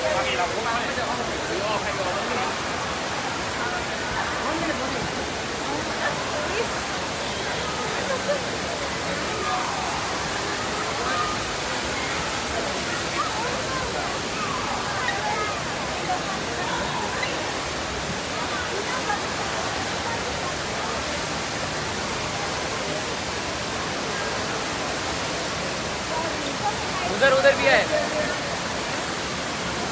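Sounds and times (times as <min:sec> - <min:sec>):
faint voices: 0:00.0 - 0:29.9
indoor waterfall rushing: 0:00.0 - 0:29.9.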